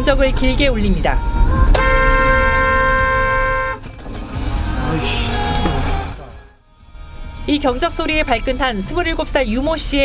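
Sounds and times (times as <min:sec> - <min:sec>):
low vehicle rumble: 0:00.0 - 0:08.3
background music: 0:00.0 - 0:10.0
car horn long blast: 0:01.3 - 0:04.0.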